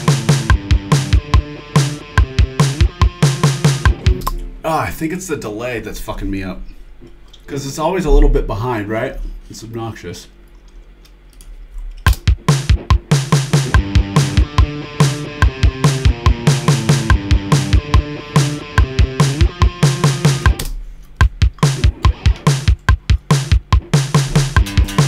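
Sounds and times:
electric guitar: 0:00.0 - 0:04.6, 0:13.6 - 0:20.7, 0:21.6 - 0:22.7, 0:24.4 - 0:25.0
programmed drum beat: 0:00.0 - 0:04.7, 0:12.0 - 0:25.0.

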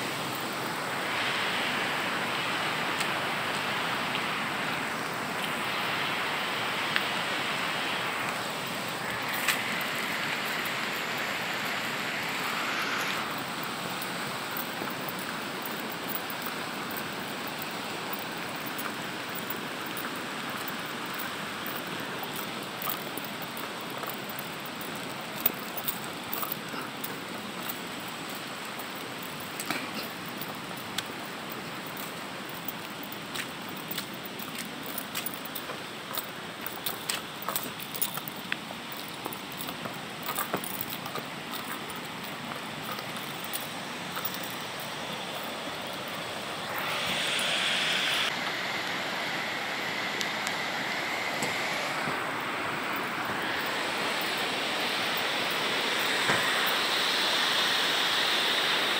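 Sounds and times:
river rushing: 0:00.0 - 0:58.9
clinks and taps from walking: 0:14.0 - 0:45.4.

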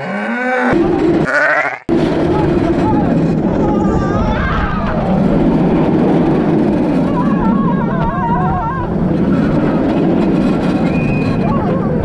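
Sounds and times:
roller coaster running on track: 0:00.8 - 0:12.0
wind rush on microphone: 0:01.9 - 0:12.0.

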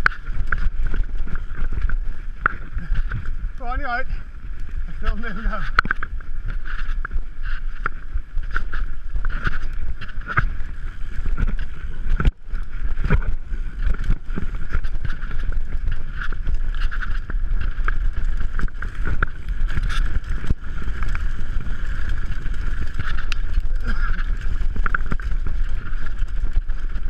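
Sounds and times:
mountain bike rattling on dirt trail: 0:00.0 - 0:27.0
wind rumble on microphone: 0:00.0 - 0:27.0.

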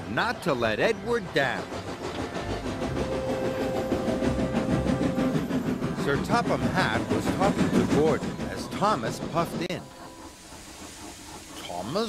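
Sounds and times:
wagons clattering over rails: 0:00.0 - 0:12.0
steam engine puffing: 0:00.5 - 0:12.0.

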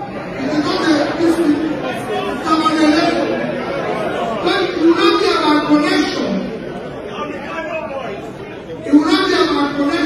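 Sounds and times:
audience chatter: 0:00.0 - 0:10.0
man talking into microphone: 0:00.4 - 0:03.5, 0:04.3 - 0:06.5, 0:07.2 - 0:10.0.

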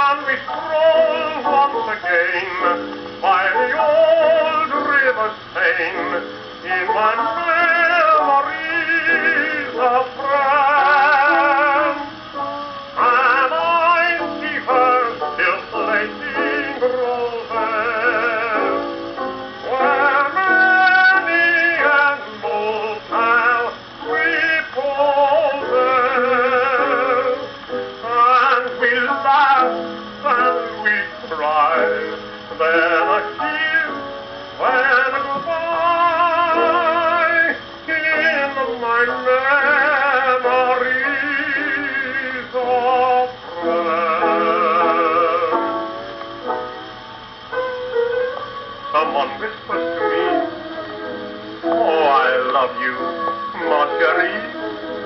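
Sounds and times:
old phonograph record playing: 0:00.0 - 0:55.0
piano accompaniment: 0:00.0 - 0:55.0
vibrato melody: 0:43.4 - 0:55.0.

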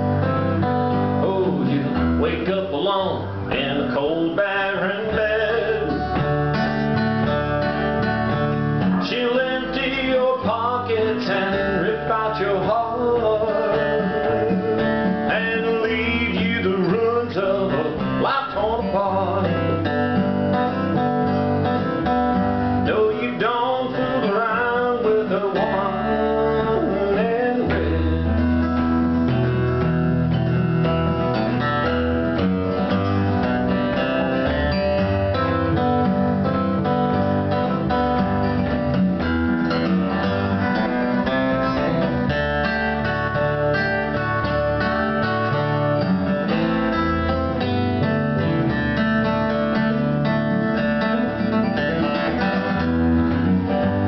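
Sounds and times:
acoustic guitar: 0:00.0 - 0:54.0
electric bass: 0:00.0 - 0:54.0.

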